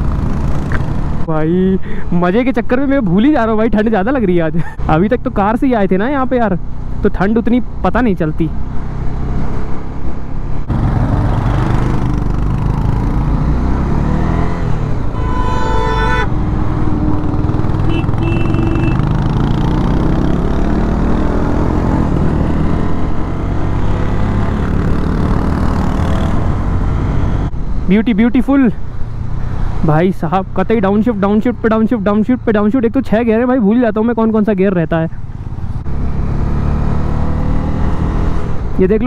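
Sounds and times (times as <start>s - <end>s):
vehicle horn: 15.1s - 16.4s, 17.8s - 19.1s
motorcycle engine running: 16.6s - 19.8s.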